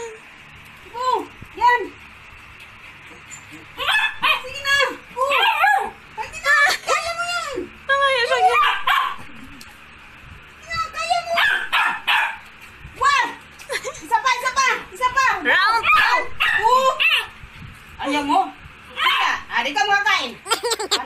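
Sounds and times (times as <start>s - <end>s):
puppy barking and yelping: 8.5s - 9.2s.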